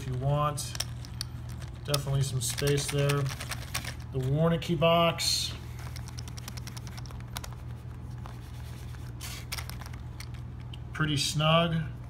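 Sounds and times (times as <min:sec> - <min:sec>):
poker chips clicking: 0:00.0 - 0:04.2, 0:05.8 - 0:07.6, 0:09.2 - 0:10.8.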